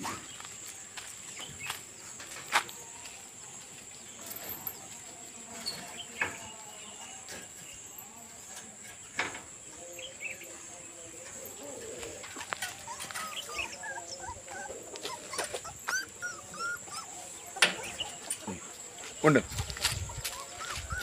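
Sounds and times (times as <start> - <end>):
puppies whimpering and squeaking: 9.8 - 18.8, 19.6 - 21.0.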